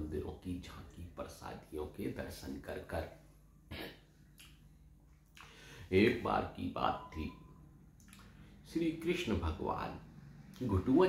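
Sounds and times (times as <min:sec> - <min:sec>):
man talking: 0:00.0 - 0:03.9, 0:05.9 - 0:07.5, 0:08.7 - 0:10.0, 0:10.6 - 0:11.0
faint mouth click: 0:04.3 - 0:05.6, 0:08.0 - 0:08.4
man breathing in: 0:05.4 - 0:05.9.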